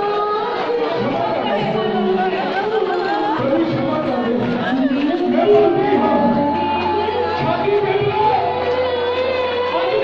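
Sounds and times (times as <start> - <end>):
congregation praying aloud: 0.5 - 10.0.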